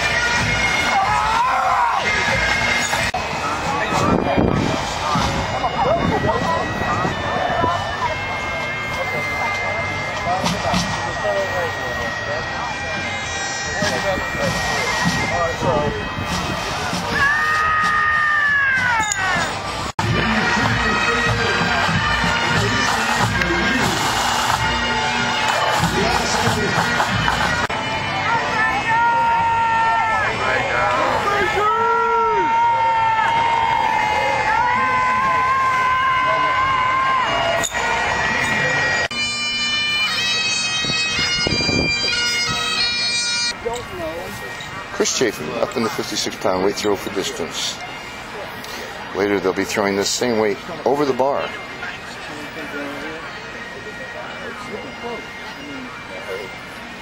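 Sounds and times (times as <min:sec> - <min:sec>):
bagpipe music: 0:00.0 - 0:57.0
crowd chatter: 0:00.0 - 0:57.0.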